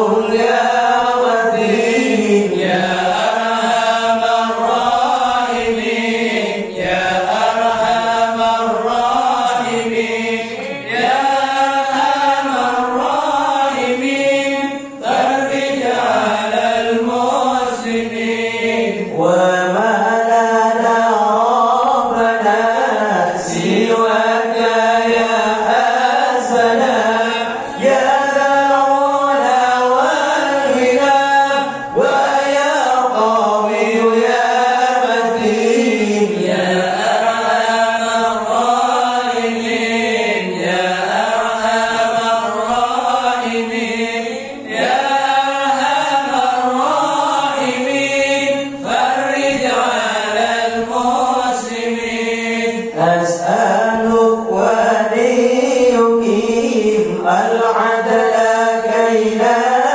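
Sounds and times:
men chanting into microphones: 0:00.0 - 0:59.9.

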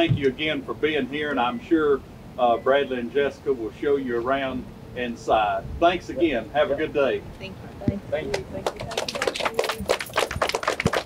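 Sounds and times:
people applauding: 0:08.3 - 0:11.0.

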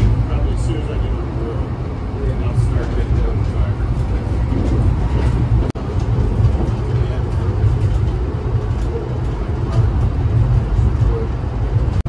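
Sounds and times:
train running at speed: 0:00.0 - 0:12.0.

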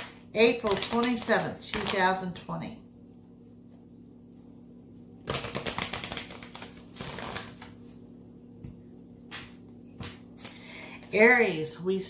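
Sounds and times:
cards being shuffled: 0:05.2 - 0:08.0.

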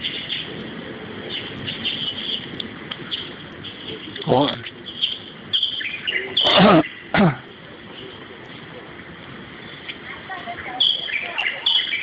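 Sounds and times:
birds chirping: 0:00.0 - 0:12.0.

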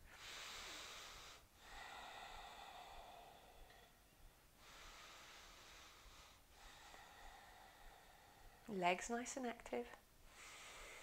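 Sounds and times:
deep breathing through the nose: 0:00.0 - 0:08.7, 0:10.3 - 0:11.0.

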